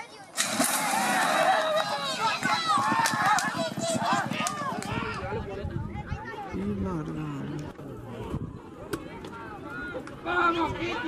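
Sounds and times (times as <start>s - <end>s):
voices shouting: 0.6s - 6.5s
galloping hoofbeats: 1.8s - 5.6s.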